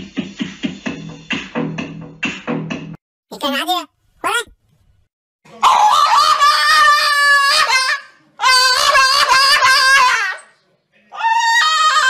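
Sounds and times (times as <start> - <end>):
dog howling: 5.6 - 10.5, 11.2 - 12.0.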